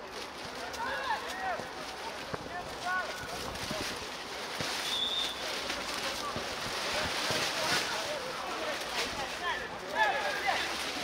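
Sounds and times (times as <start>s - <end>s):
wind: 0.0s - 11.0s.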